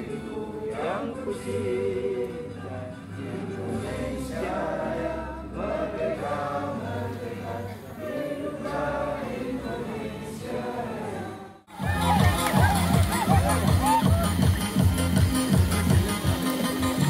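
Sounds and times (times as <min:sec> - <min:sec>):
chorus of voices singing: 0:00.0 - 0:14.2.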